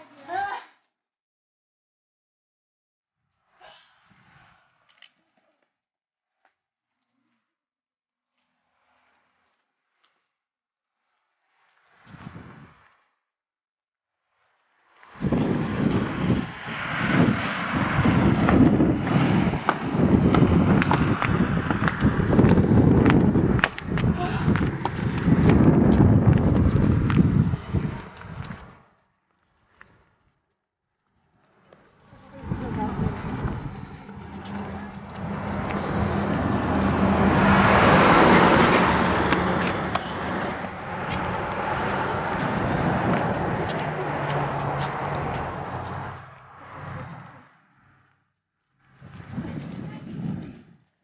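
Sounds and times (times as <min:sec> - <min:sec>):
wind rumbling on microphone: 0:11.6 - 0:13.1, 0:15.0 - 0:30.4, 0:31.2 - 0:48.1, 0:48.8 - 0:51.0
car driving past: 0:15.5 - 0:27.0, 0:32.1 - 0:48.2.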